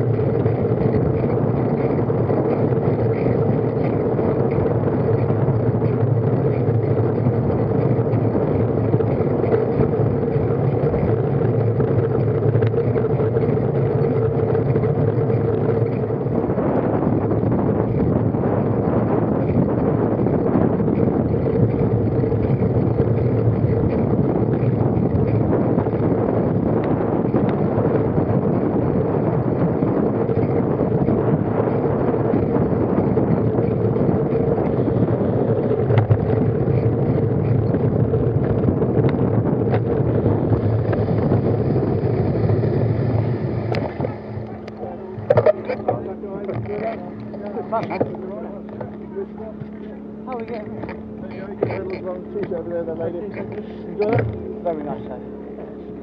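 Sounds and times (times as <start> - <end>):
bicycle tyre rumble: 0.0 - 56.0
wind rush on microphone: 0.0 - 56.0.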